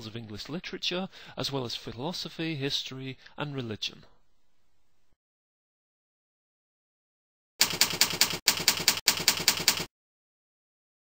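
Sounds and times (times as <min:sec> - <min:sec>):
typing on computer keyboard: 0:07.6 - 0:09.9.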